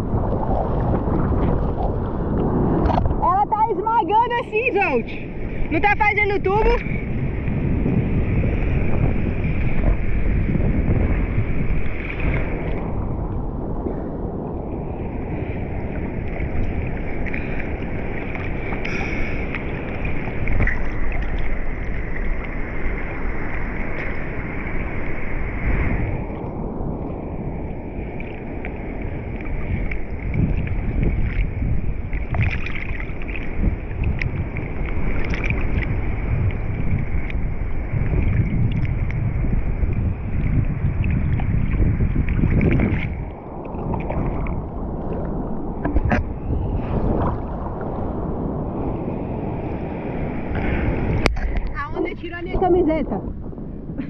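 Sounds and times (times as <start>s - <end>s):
seawater sloshing and lapping: 0.0s - 26.6s, 27.6s - 49.0s
wind on microphone: 0.0s - 54.0s.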